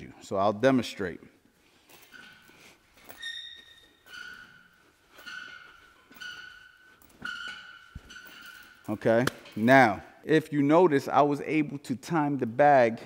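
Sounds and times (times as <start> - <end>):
chain and swivel squeaking: 1.9 - 9.8.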